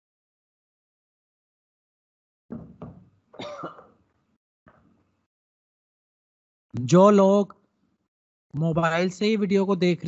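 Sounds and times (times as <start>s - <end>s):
man coughing: 3.4s - 4.0s.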